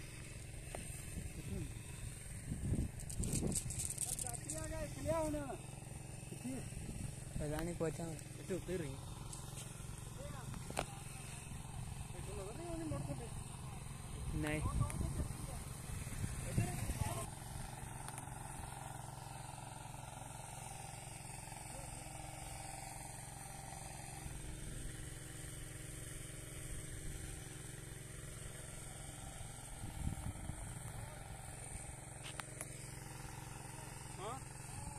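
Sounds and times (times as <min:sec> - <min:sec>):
engine running: 0:00.0 - 0:34.9.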